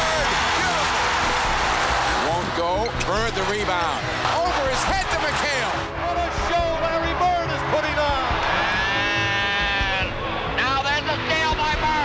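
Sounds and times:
crowd cheering: 0.0 - 11.9.

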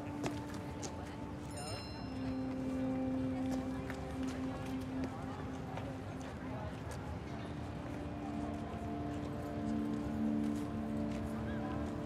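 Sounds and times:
footsteps: 0.0 - 7.1.

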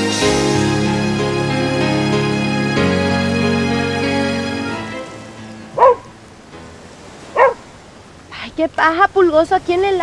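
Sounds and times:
background music: 0.0 - 7.6
dog barking: 5.8 - 6.1, 7.3 - 7.7.

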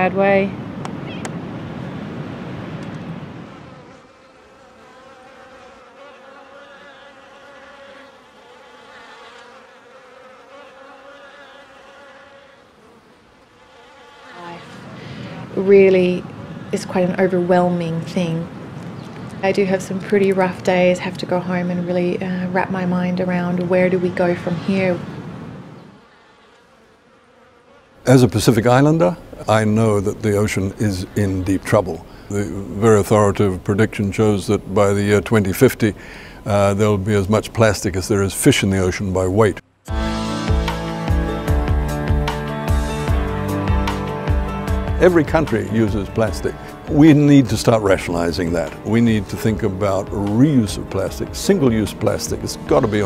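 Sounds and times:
insects buzzing: 0.0 - 53.0
low steady hiss: 27.9 - 39.9.

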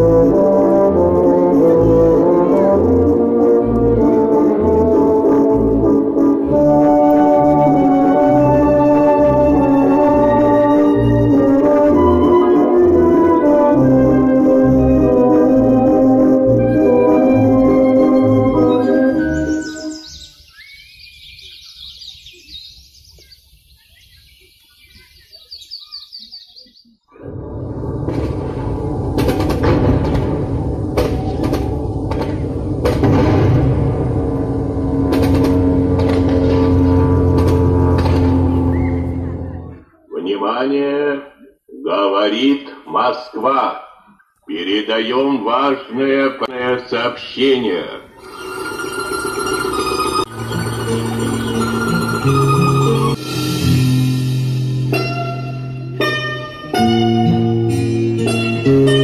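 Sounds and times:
ringing alarm tone: 0.0 - 20.0, 48.2 - 53.2
birds chirping and trilling: 18.5 - 27.2, 38.5 - 40.3
bombardment rumble and crashes: 27.2 - 39.8.

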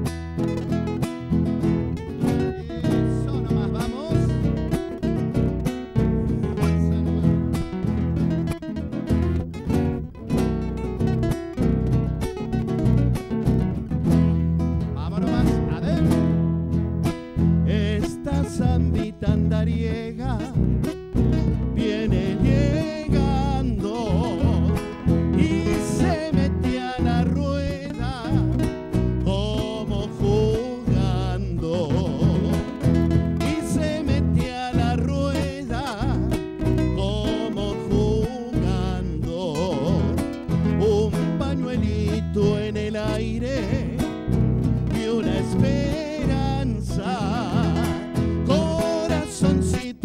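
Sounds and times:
acoustic guitars strummed: 0.0 - 50.0
electric bass line: 0.0 - 50.0.

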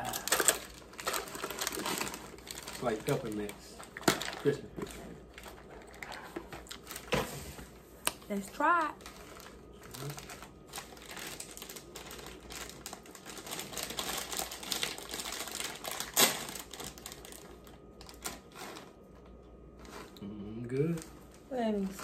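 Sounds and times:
plastic bag crinkling: 0.0 - 7.2, 8.5 - 19.1.

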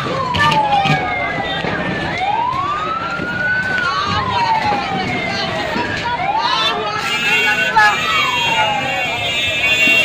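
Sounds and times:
emergency vehicle siren wailing: 0.0 - 10.0.

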